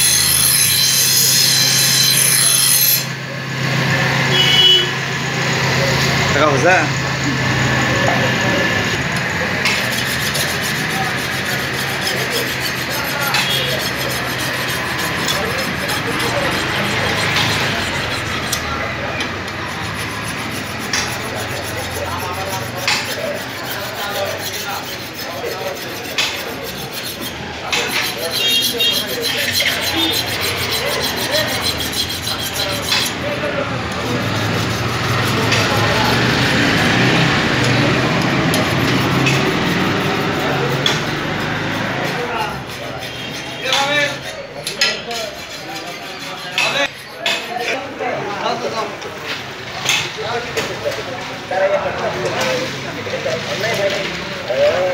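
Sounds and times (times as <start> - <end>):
file rasping on steel blade: 0.0 - 3.1, 8.9 - 48.6.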